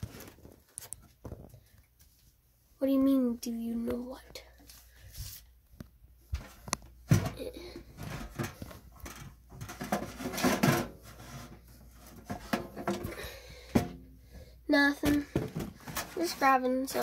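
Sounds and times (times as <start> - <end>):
clatter of containers: 7.1 - 14.0, 15.0 - 17.0
tins knocking on wooden shelf: 8.0 - 11.2, 12.2 - 14.0.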